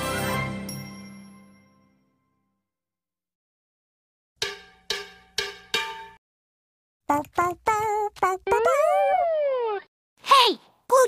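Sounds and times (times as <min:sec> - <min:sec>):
bell-like jingle notes: 0:00.6 - 0:02.0.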